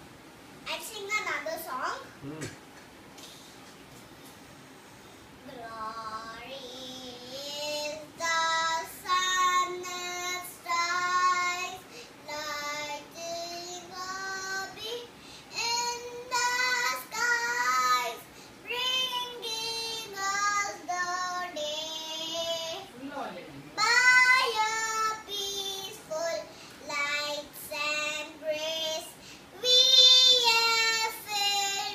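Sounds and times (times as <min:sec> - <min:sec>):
girl singing unaccompanied: 0:05.4 - 0:23.0, 0:23.8 - 0:31.9.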